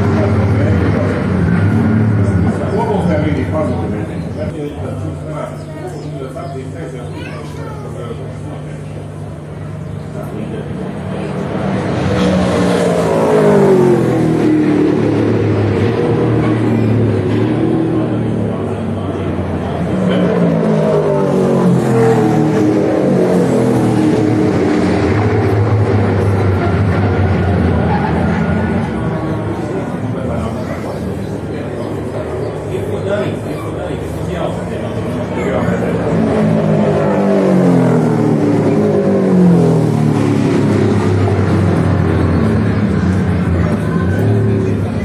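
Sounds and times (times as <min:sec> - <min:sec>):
race car engines: 0:00.0 - 0:45.0.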